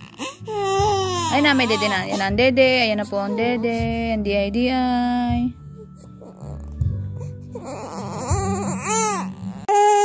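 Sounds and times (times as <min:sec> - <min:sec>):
baby crying: 0:00.0 - 0:02.4, 0:07.4 - 0:10.0.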